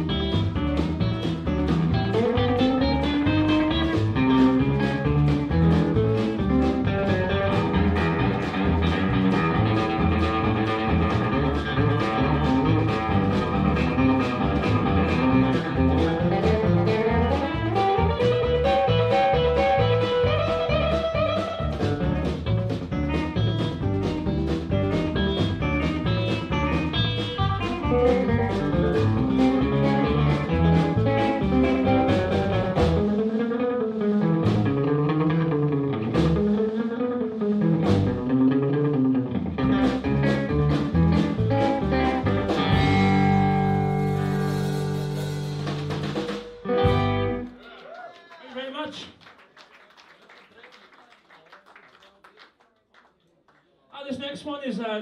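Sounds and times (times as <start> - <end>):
electric guitar bending notes: 0.0 - 47.6
bass guitar: 0.0 - 47.7
drums: 0.0 - 49.4.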